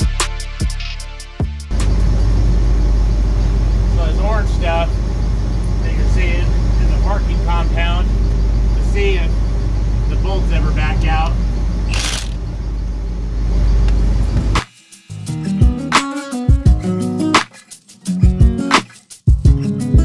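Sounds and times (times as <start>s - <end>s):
engine low rumble: 1.7s - 14.6s
indistinct voices: 3.9s - 12.4s.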